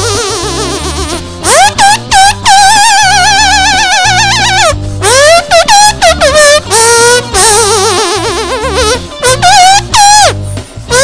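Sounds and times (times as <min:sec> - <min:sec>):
bass and drums: 0:00.0 - 0:11.0
squeaking bicycle pump melody: 0:00.0 - 0:11.0.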